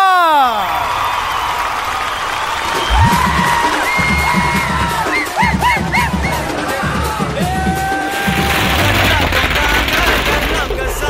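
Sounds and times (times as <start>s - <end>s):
crowd cheering and whooping: 0.0s - 6.7s
music with pounding drum beat: 2.9s - 8.4s.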